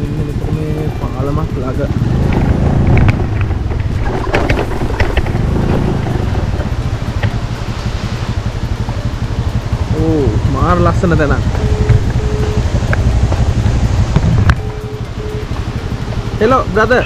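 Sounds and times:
motorcycle engine rumbling: 0.0 - 17.0
faint clicks: 12.8 - 13.5.

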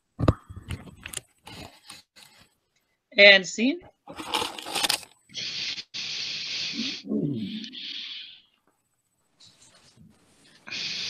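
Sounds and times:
device handling clicks and rustling: 0.7 - 2.5.

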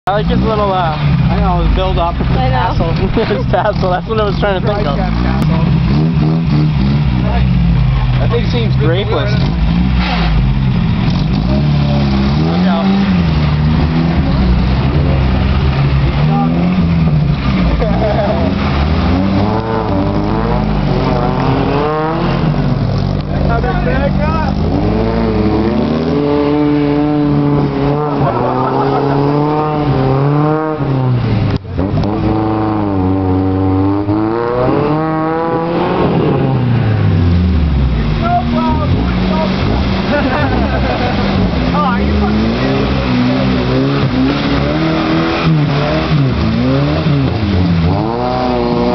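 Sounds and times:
truck engine revving: 0.0 - 48.9.

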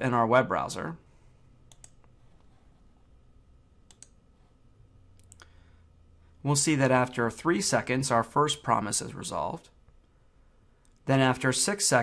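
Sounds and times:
faint computer clicks: 1.7 - 2.5, 3.9 - 4.2.

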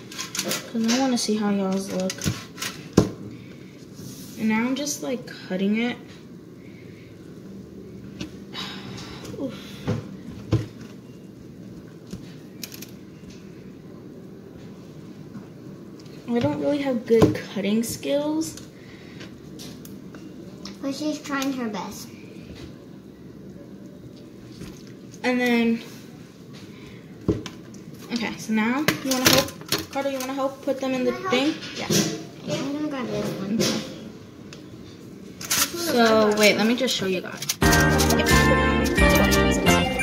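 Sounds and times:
kitchen room noise: 0.0 - 40.0.

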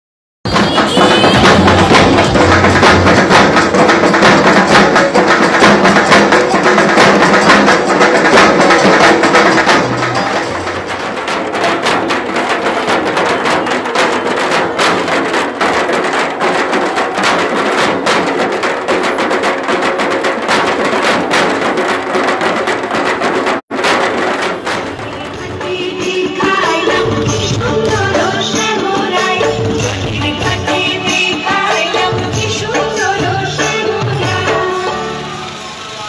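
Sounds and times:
drums beaten with sticks: 0.5 - 35.9.

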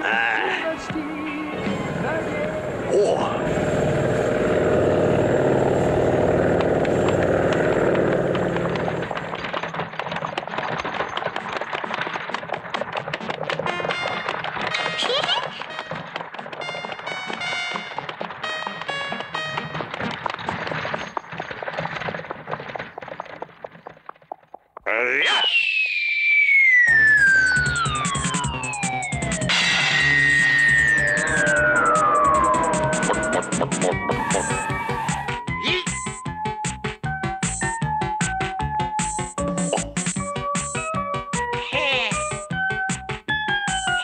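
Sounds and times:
comic clicks and rattles: 5.8 - 24.9, 27.0 - 34.7
cartoon music: 13.7 - 20.0, 26.8 - 36.2
long descending whistle: 25.3 - 35.3.

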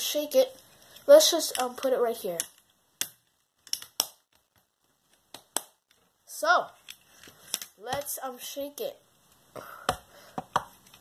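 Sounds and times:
plastic board clicks and knocks: 2.4 - 6.0, 9.9 - 10.8.

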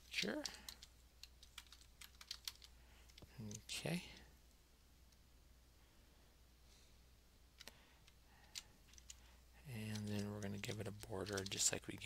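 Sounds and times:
low steady hum: 0.0 - 12.0
keyboard keystrokes: 0.4 - 2.7.

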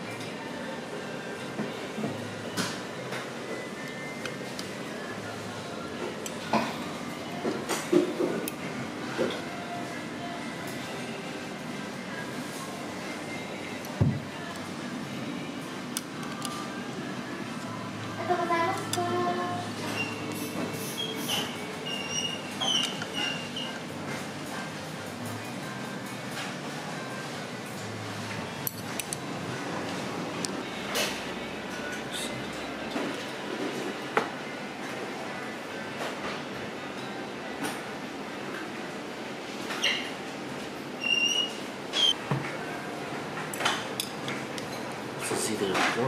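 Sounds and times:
restaurant room noise: 0.0 - 46.0.

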